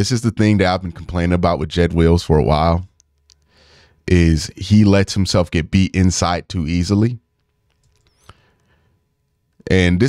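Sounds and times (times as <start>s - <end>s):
man speaking: 0.0s - 2.9s, 4.1s - 7.2s, 9.6s - 10.0s.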